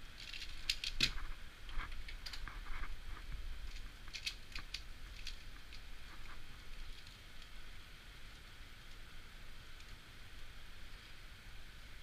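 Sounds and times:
plastic puzzle clicking: 0.2s - 1.2s, 3.7s - 5.8s.

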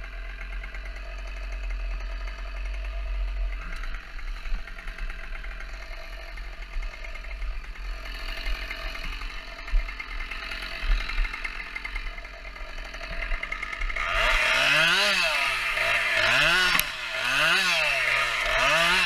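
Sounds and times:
chainsaw idling and revving: 0.0s - 19.0s.

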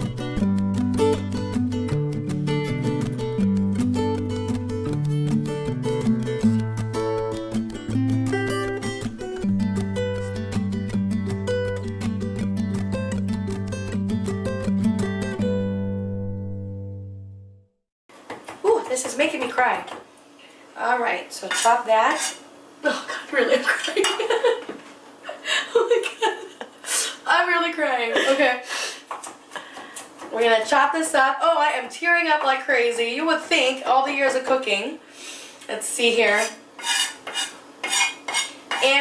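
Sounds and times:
woman talking: 18.6s - 20.0s, 20.8s - 24.4s, 27.2s - 28.7s, 30.3s - 35.0s, 35.7s - 36.6s, 38.8s - 39.0s.

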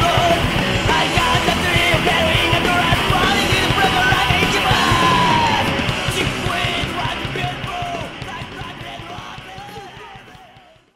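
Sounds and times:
harsh yelled vocal: 0.0s - 10.3s
heavy metal drums and guitar: 0.0s - 10.9s.

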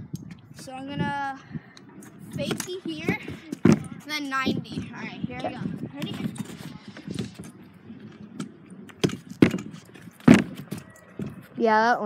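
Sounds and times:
scooter clacking on plywood: 8.4s - 11.4s.

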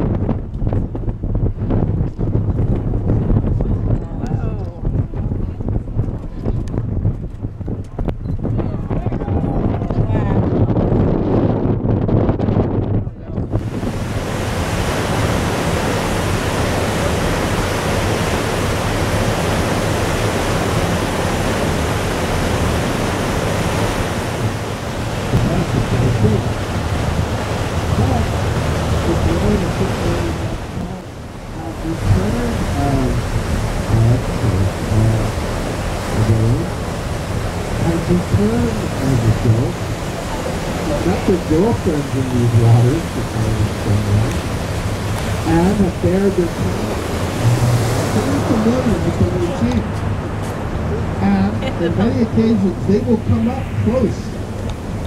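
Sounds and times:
wind and sea rushing hiss: 13.5s - 55.0s
indistinct voices: 25.2s - 26.7s, 27.8s - 35.4s, 36.1s - 36.8s, 37.7s - 44.5s, 45.4s - 54.4s.

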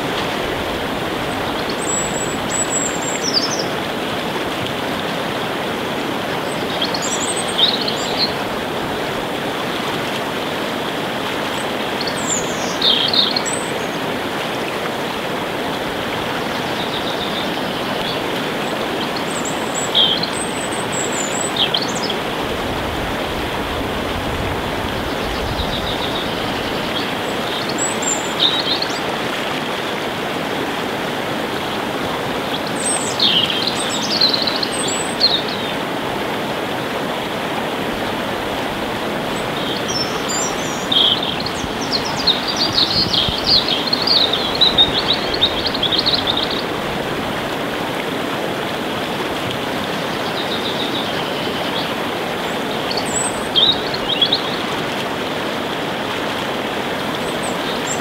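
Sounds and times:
small birds chirping: 39.4s - 46.6s.

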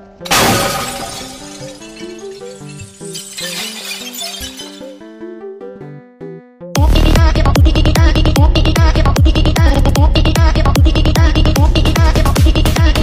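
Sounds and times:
melodic background music: 0.0s - 7.5s
glass shattering: 0.3s - 5.0s.

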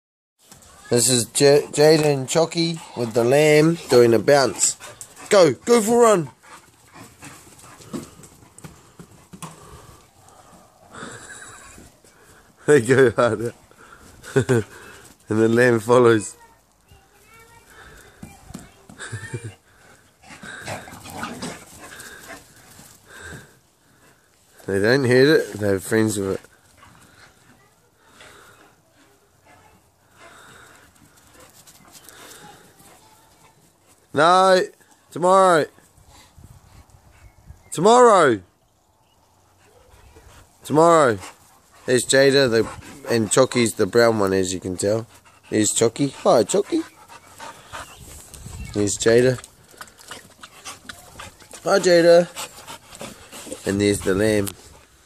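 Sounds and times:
dog panting: 1.2s - 12.6s, 17.6s - 24.7s, 26.2s - 34.2s, 39.4s - 55.0s.

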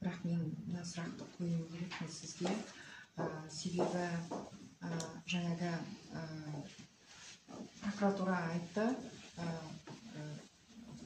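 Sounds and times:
person speaking: 7.6s - 11.0s.

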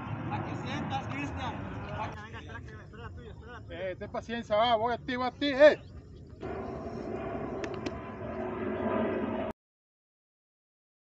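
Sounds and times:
outdoor background noise: 0.0s - 9.5s.

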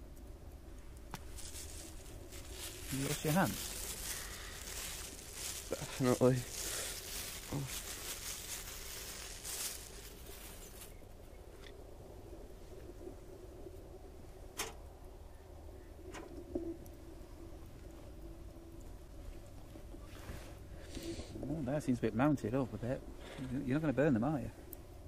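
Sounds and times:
plastic wrapping crinkling: 1.1s - 11.0s.

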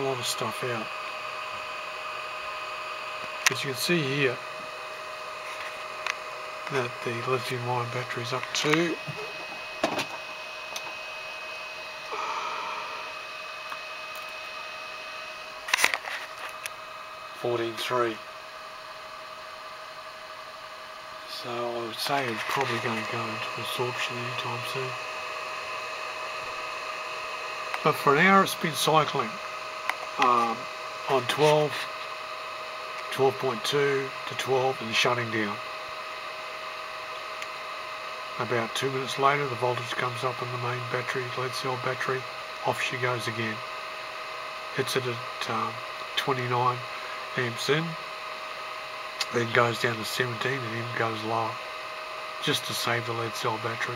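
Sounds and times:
electrical hum and whine: 0.0s - 53.9s.

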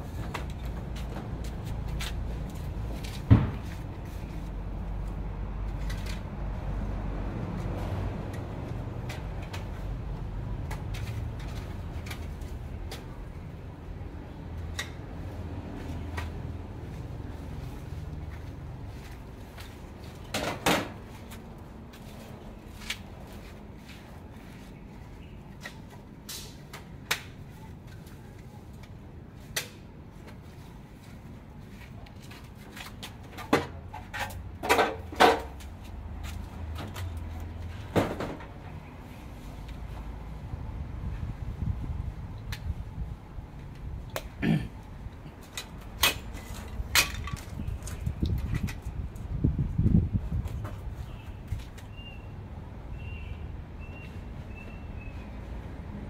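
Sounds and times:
knocks and clatters of hard objects: 32.7s - 35.7s, 37.8s - 38.6s, 45.5s - 48.8s.

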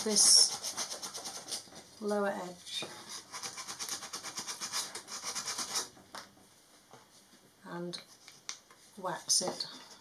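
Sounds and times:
sandpaper on wood: 0.0s - 1.6s, 3.2s - 5.9s.

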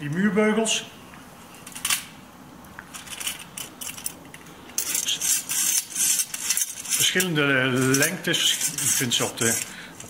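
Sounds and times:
metal bracket rattling and scraping: 4.8s - 9.7s.

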